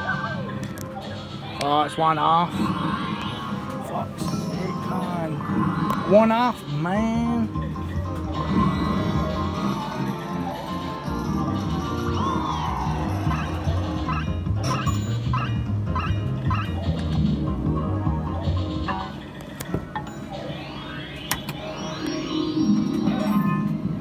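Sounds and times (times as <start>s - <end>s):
fruit machine game music: 2.8s - 24.0s
evenly spaced beeps: 18.9s - 24.0s
rising tone: 20.3s - 23.8s.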